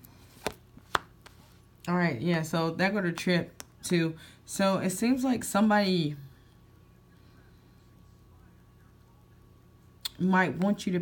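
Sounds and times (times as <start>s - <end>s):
woman speaking: 1.9s - 6.4s, 10.1s - 11.0s.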